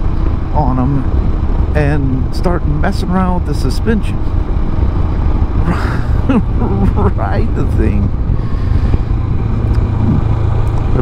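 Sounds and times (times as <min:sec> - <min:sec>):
motorcycle engine cruising: 0:00.0 - 0:11.0
wind and road noise rumble: 0:00.0 - 0:11.0
person laughing: 0:05.6 - 0:07.4.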